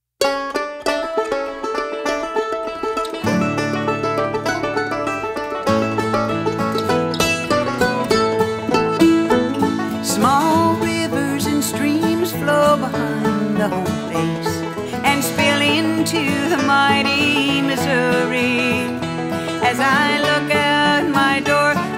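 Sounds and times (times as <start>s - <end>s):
bluegrass string band: 0.2s - 21.9s
picked string notes: 0.2s - 21.9s
bass line: 2.6s - 20.4s.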